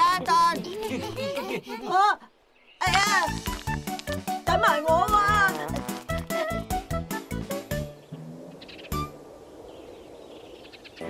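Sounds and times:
steady low hiss: 6.7 - 11.0
faint bird chirps: 7.9 - 11.0.

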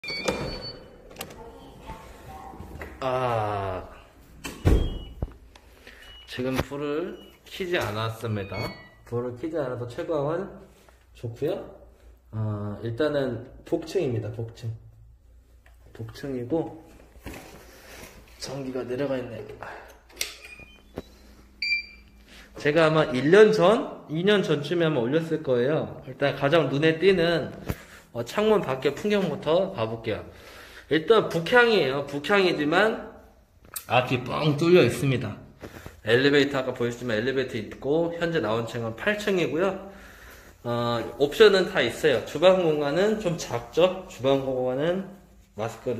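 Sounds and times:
electronic door lock chime: 0.0 - 1.3, 4.5 - 5.2, 6.0 - 9.0.

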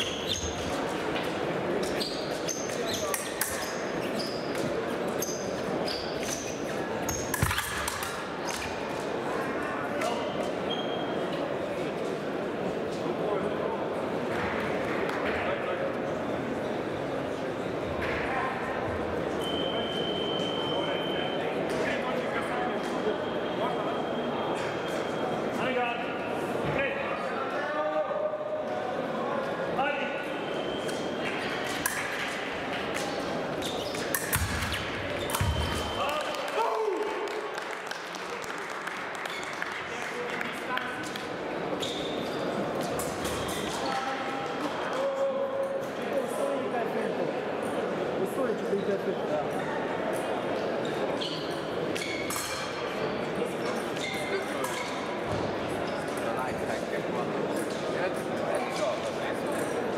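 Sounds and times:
shoe squeaks: 0.0 - 1.0, 1.8 - 7.7, 10.2 - 11.3, 33.4 - 36.2, 41.7 - 44.2, 50.8 - 56.2
murmur of voices: 0.0 - 59.9.

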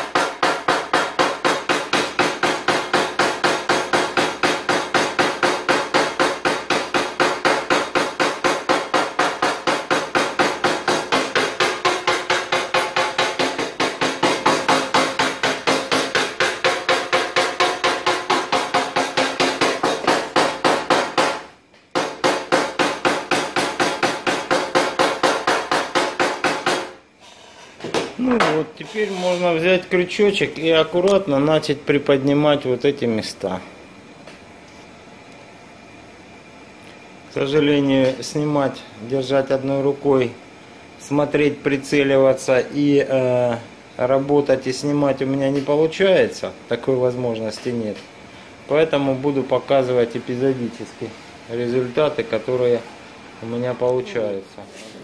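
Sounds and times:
hammer tapping on steel panel: 0.0 - 27.0.

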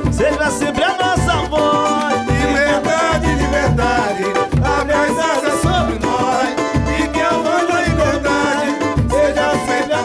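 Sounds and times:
hand drums beating low pulse: 0.0 - 10.0
strummed small guitar: 0.0 - 10.0
voices singing: 0.0 - 10.0.

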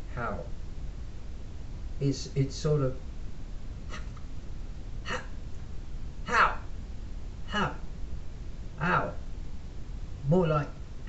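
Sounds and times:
low room hum: 0.0 - 11.0
man saying a word: 6.3 - 6.7, 7.5 - 7.8, 8.8 - 9.2.

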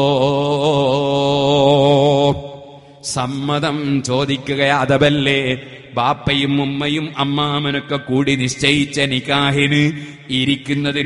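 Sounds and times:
man chanting one long note: 0.0 - 11.0.

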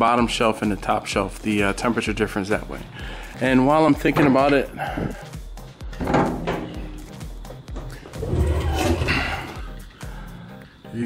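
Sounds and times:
background music: 0.0 - 11.0
metal door clunk: 6.0 - 9.7
rumbling handling noise: 7.8 - 9.7.

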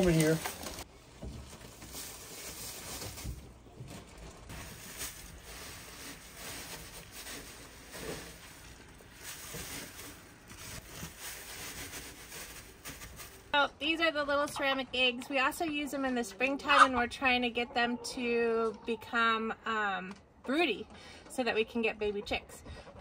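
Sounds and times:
wood chip bedding rustling: 0.0 - 13.6.

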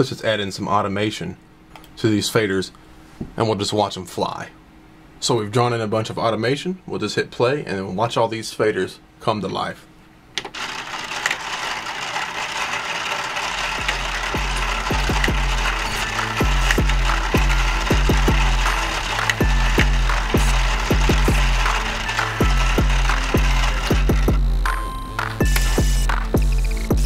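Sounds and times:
motorized faders whirring: 10.5 - 26.9
music with heavy bass line: 22.4 - 24.7, 25.4 - 27.0.

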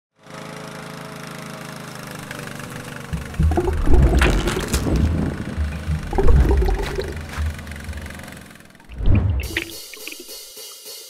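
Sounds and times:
lawn mower engine running: 0.2 - 6.2, 7.2 - 8.8.

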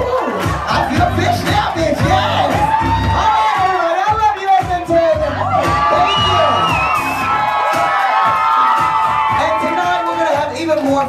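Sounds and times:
audience cheering and whooping: 0.0 - 11.0
dance-pop music over sound system: 0.0 - 11.0.

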